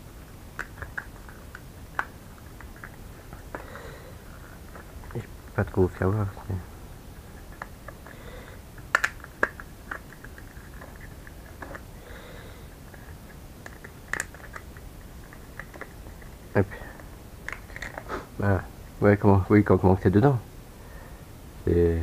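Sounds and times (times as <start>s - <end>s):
faint room hiss: 0.0s - 22.0s.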